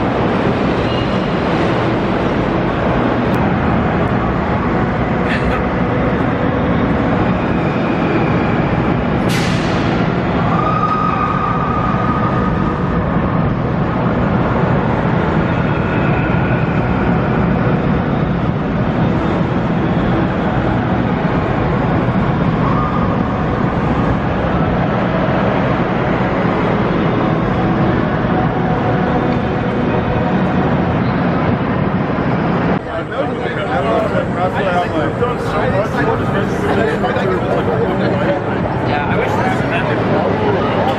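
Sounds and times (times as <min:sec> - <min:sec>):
roller coaster rumbling on track: 0:00.0 - 0:40.9.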